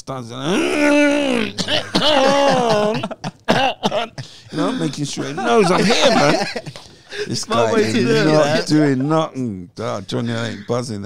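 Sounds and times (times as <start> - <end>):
man coughing and clearing throat: 1.2 - 8.6.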